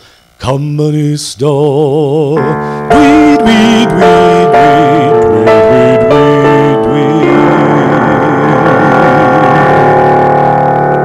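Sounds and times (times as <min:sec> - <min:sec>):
sustained final chord: 0:02.4 - 0:11.0.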